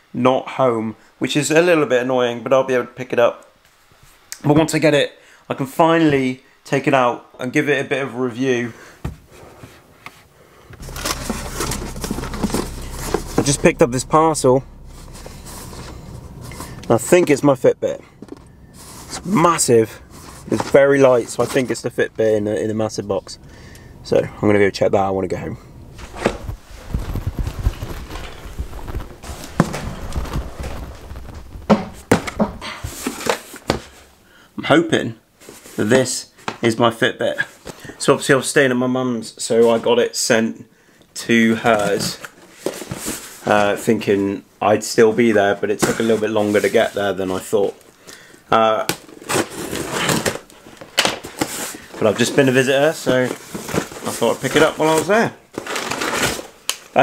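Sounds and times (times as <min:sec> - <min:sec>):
handling knocks and thumps: 0:09.0 - 0:09.8, 0:10.7 - 0:17.0, 0:26.0 - 0:34.0
wheelchair rolling on wooden floor: 0:10.8 - 0:13.8, 0:26.0 - 0:33.2
cardboard crackling and scraping: 0:10.8 - 0:17.0, 0:18.2 - 0:22.6, 0:26.0 - 0:34.0, 0:41.7 - 0:43.9, 0:48.8 - 0:56.7.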